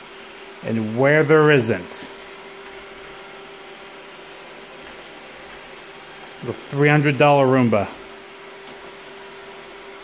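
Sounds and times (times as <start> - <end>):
robot vacuum humming: 0.0 - 10.0.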